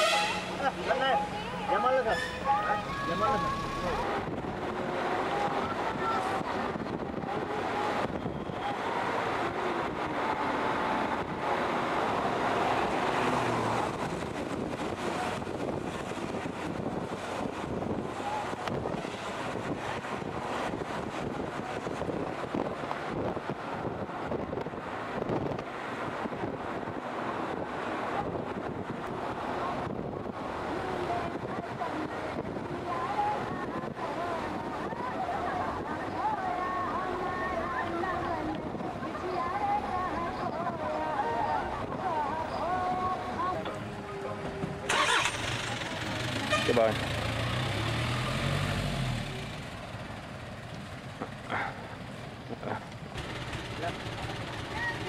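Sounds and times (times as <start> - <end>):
vehicle road noise: 0.0 - 55.0.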